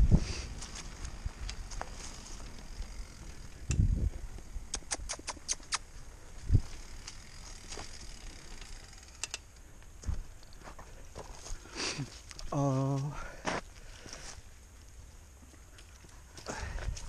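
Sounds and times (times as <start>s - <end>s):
bike tyres rumbling on dirt: 0.0s - 4.7s, 5.9s - 9.2s
sharp ticks and rattles: 0.6s - 10.6s.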